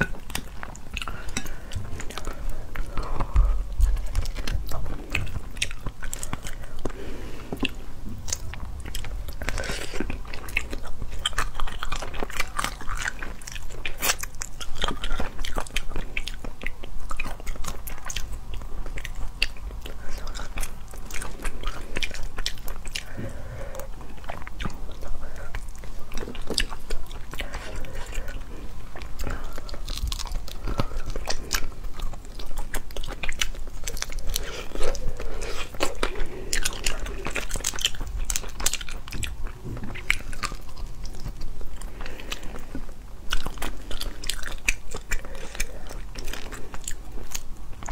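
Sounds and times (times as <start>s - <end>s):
chewing and nibbling meat: 0.0s - 47.9s.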